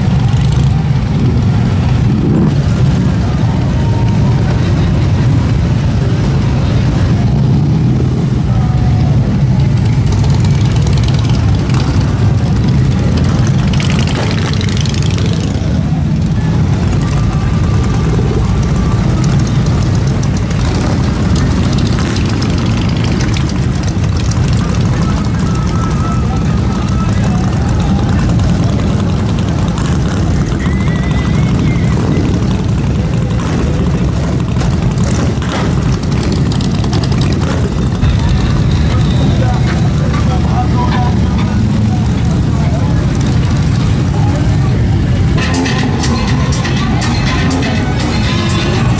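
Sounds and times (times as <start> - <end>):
motorcycle engines idling: 0.0 - 48.9
people's voices: 0.0 - 48.9.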